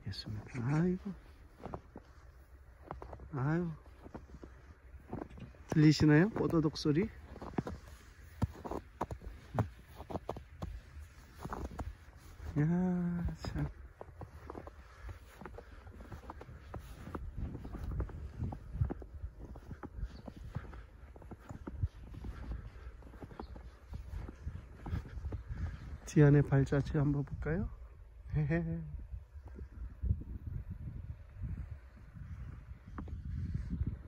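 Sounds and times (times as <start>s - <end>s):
footsteps crunching in snow: 0.0s - 27.5s.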